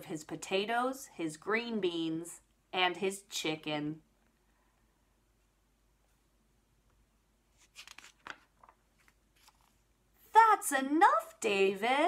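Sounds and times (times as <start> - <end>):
paper page turning: 7.5 - 9.9.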